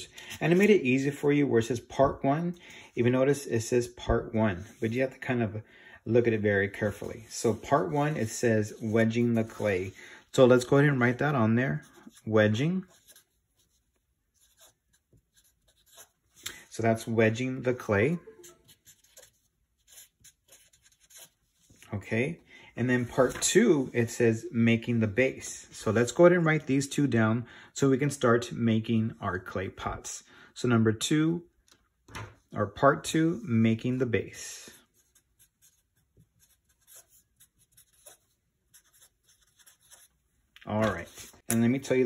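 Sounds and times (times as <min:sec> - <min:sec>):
marker writing on paper: 0:12.9 - 0:16.2, 0:18.3 - 0:21.4, 0:34.8 - 0:40.2.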